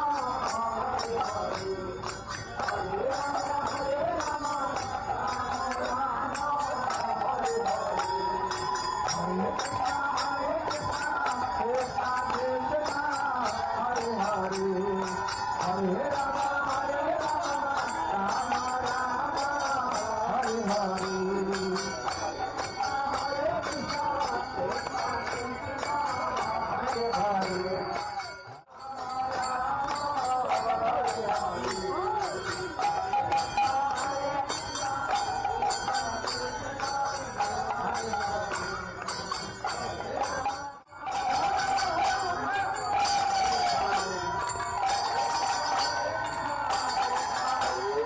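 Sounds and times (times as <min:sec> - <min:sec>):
hand cymbals clashing: 0:00.0 - 0:48.0
people chanting: 0:00.0 - 0:48.0.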